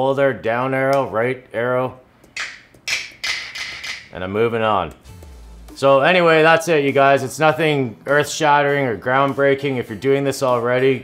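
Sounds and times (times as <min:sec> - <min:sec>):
sharp snare drum hits: 0:02.4 - 0:04.1.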